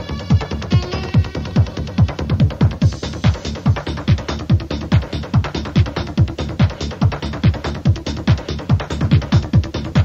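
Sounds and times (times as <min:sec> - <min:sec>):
fast hi-hats: 0:00.0 - 0:10.0
kick drum: 0:00.0 - 0:10.0.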